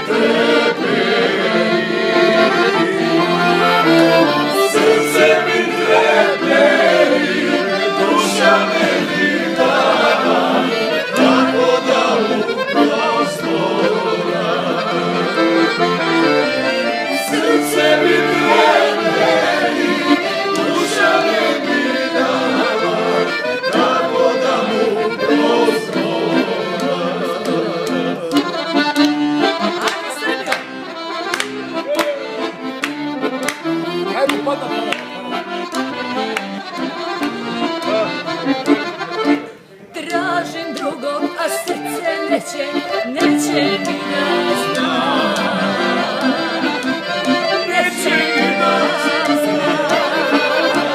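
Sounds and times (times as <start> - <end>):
man and woman singing: 0.0 - 15.2, 17.2 - 28.7, 40.0 - 50.9
accordion playing lively tune: 0.0 - 50.9.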